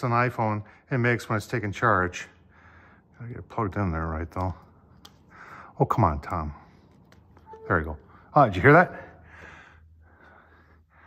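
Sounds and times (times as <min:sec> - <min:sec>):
soft human breaths: 0:02.3 - 0:03.2, 0:04.6 - 0:07.4, 0:08.0 - 0:11.0.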